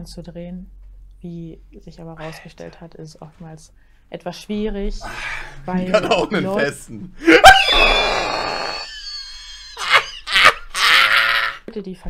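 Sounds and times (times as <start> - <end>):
young man screaming: 7.2 - 9.0, 9.8 - 11.7.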